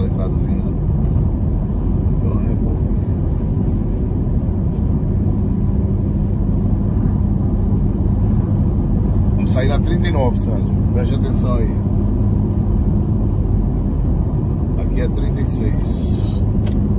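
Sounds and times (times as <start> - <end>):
car cabin road rumble: 0.0 - 16.9.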